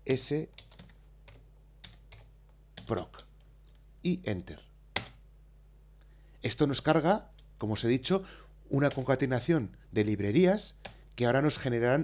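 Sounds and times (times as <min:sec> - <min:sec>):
computer keyboard keystrokes: 0:00.5 - 0:03.8, 0:05.0 - 0:05.2, 0:08.8 - 0:09.1.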